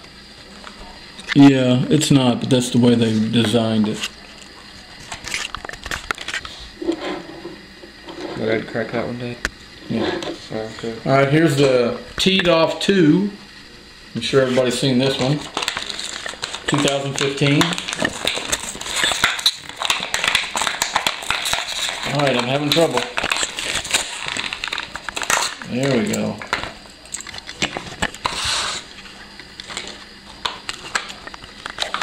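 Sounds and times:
plastic blister packaging crackling: 0:14.6 - 0:32.0.

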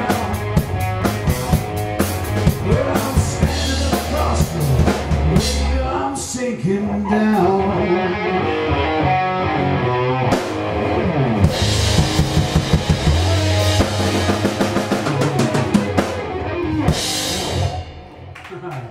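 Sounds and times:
rock band playing: 0:00.0 - 0:06.4, 0:07.2 - 0:18.8
rapid drum hits: 0:11.5 - 0:16.3.

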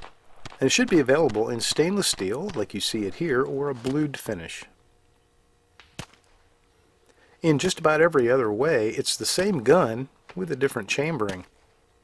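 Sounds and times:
sharp crack: 0:00.0 - 0:04.4, 0:05.8 - 0:06.4, 0:11.2 - 0:11.6.

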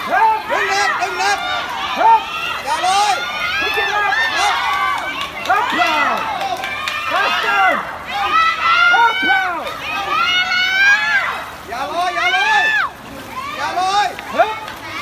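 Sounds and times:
spectators shouting and cheering: 0:00.0 - 0:15.0.

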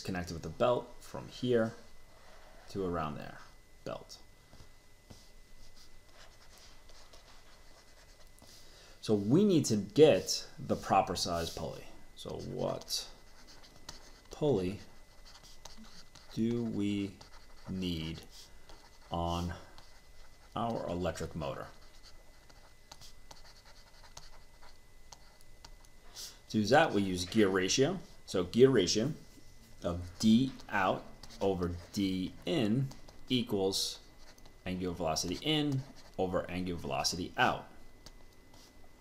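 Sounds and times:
stylus scratching and tapping: 0:04.6 - 0:08.5, 0:10.7 - 0:26.0, 0:29.7 - 0:36.3.

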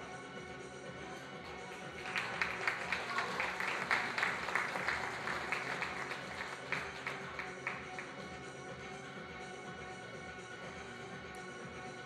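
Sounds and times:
background music: 0:00.0 - 0:12.0
audience clapping: 0:01.4 - 0:08.3.

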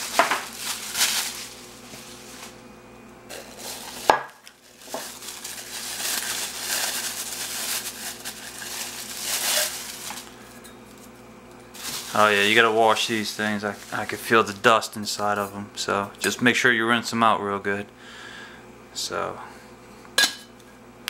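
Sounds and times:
plastic wrapping crinkling: 0:00.0 - 0:02.6, 0:03.3 - 0:11.1, 0:11.7 - 0:14.9.

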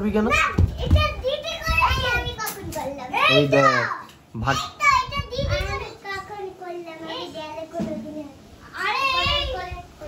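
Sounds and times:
young children talking: 0:00.1 - 0:10.0.

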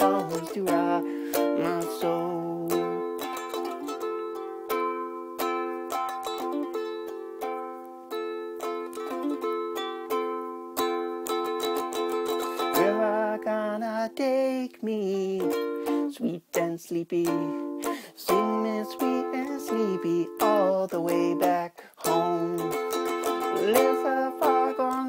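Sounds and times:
ukulele strumming chords: 0:00.0 - 0:25.0.

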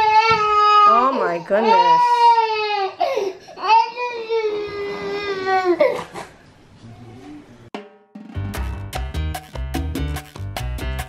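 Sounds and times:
baby crying: 0:00.0 - 0:06.3.

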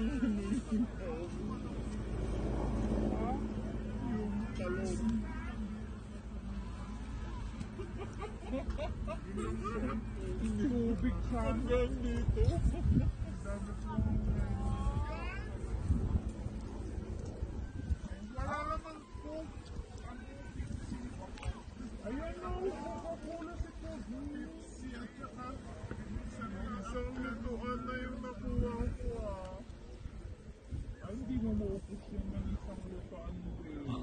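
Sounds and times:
wind rumble on microphone: 0:00.0 - 0:34.0.

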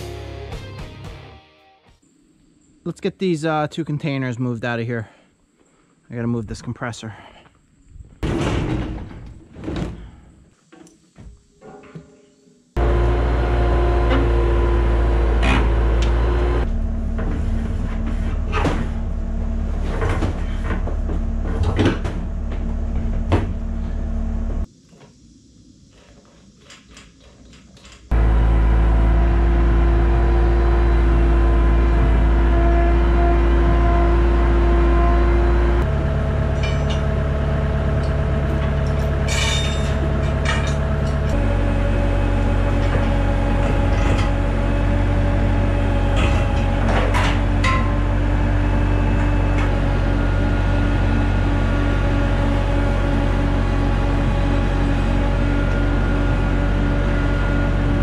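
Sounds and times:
diesel engine running: 0:12.8 - 0:24.7, 0:28.1 - 0:58.0
metal clanks: 0:36.4 - 0:37.3, 0:37.9 - 0:41.4, 0:46.1 - 0:48.2.

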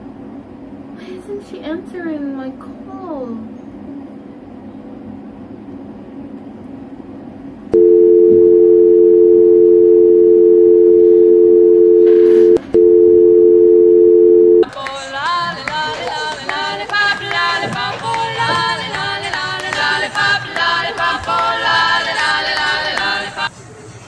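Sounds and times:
telephone dial tone: 0:07.8 - 0:14.6.

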